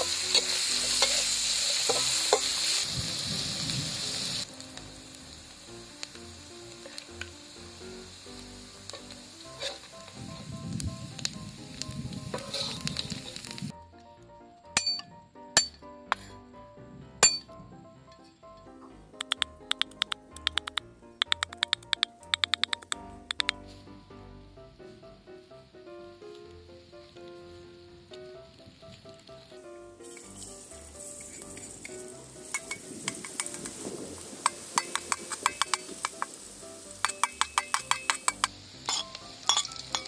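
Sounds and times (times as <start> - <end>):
metal ladle scraping and clinking: 0.0 - 2.7, 8.9 - 10.2, 12.3 - 13.4, 14.8 - 16.4, 30.0 - 33.8, 34.4 - 36.2, 37.0 - 40.0
ginger sizzling in hot oil: 0.0 - 13.7, 28.6 - 40.0
metal spatula clinking on wok: 14.8 - 16.3, 32.5 - 33.7, 34.7 - 36.2, 37.0 - 40.0.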